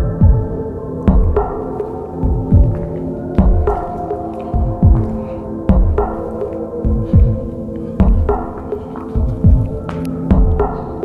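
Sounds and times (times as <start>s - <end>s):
heartbeat-like low thuds: 0.0s - 1.6s, 2.2s - 6.2s, 6.8s - 10.8s
droning hum: 0.0s - 11.0s.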